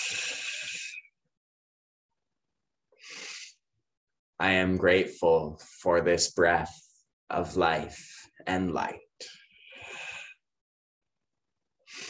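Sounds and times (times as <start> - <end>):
person breathing: 0.0 - 1.0, 3.0 - 3.6, 9.3 - 10.5.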